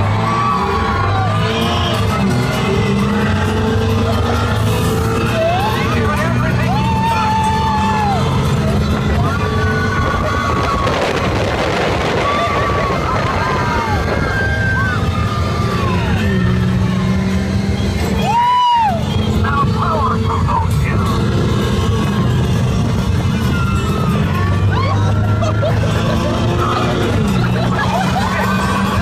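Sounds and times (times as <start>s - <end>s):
riders crying out: 0.0s - 29.0s
wind rushing on microphone: 9.0s - 15.0s
music: 21.4s - 29.0s.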